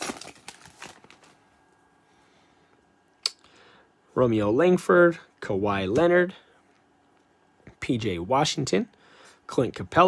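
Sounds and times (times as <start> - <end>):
wrapper crinkling: 0.0 - 1.4.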